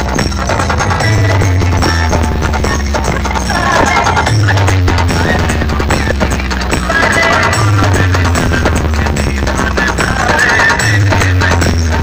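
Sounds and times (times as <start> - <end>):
loud remix music with booming bass: 0.0 - 12.0.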